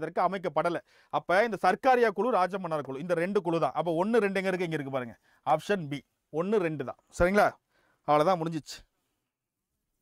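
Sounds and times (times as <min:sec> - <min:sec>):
man speaking: 0:00.0 - 0:08.9.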